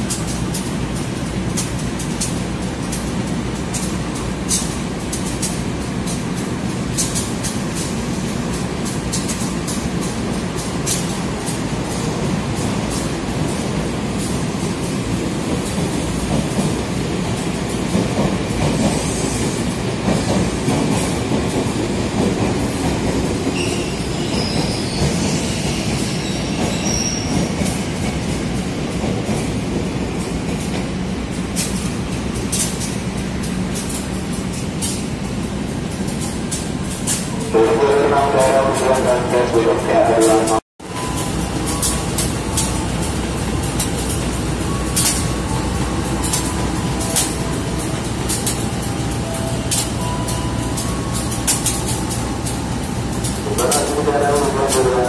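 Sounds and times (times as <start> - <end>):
electric train rumble: 0.0 - 55.0
high wheel squeals: 23.5 - 27.4
wheels clicking over rail joints: 40.4 - 55.0.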